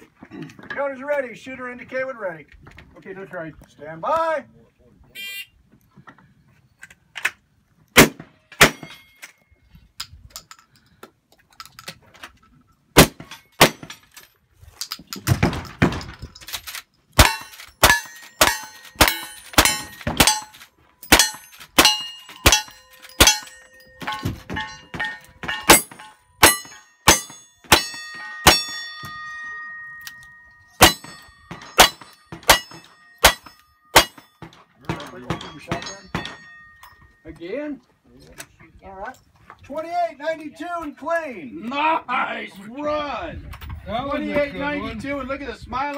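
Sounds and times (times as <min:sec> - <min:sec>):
gunshots: 0:08.0 - 0:08.8
steel targets ringing: 0:08.6 - 0:09.4, 0:17.2 - 0:37.4.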